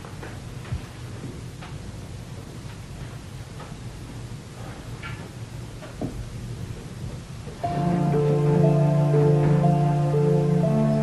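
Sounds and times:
low hiss and rumble: 0.0 - 11.0
background music with held notes: 7.6 - 11.0.

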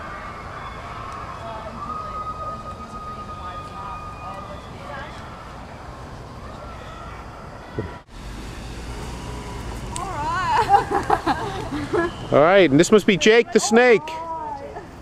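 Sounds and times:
siren rapid yelp: 0.0 - 8.0
siren long wailing tone: 0.0 - 14.3.

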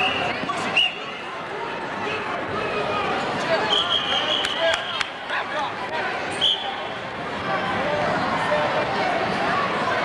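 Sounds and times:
referee's whistle blasts: 3.7 - 5.0, 6.4 - 6.8.

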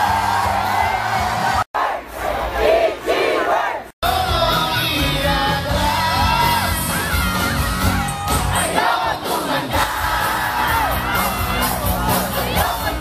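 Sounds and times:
crowd singing and shouting: 0.0 - 13.0
live rock band playing: 4.0 - 13.0.

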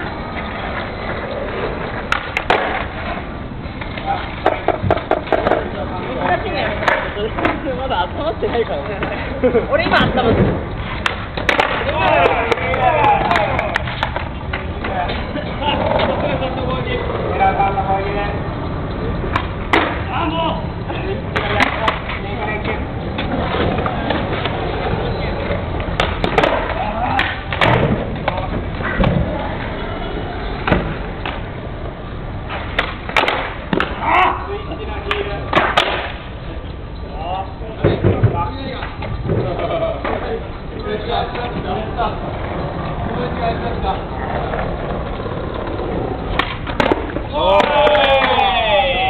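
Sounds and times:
skateboard wheels rolling: 0.0 - 49.0
people shouting: 11.8 - 13.6, 47.2 - 49.0.

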